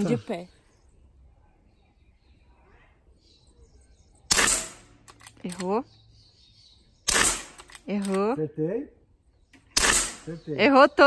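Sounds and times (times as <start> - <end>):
air rifle shot: 4.3 - 4.9, 7.1 - 7.7, 9.8 - 10.3.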